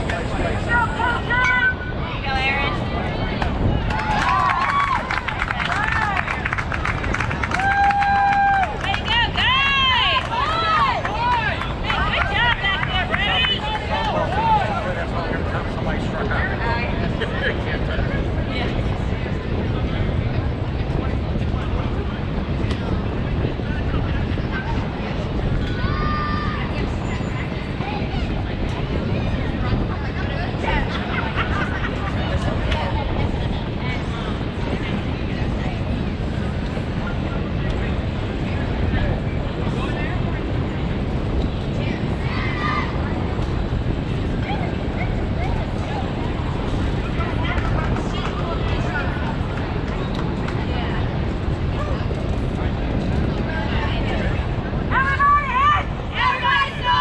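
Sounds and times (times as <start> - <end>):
steady low rumble: 0.0 - 57.0.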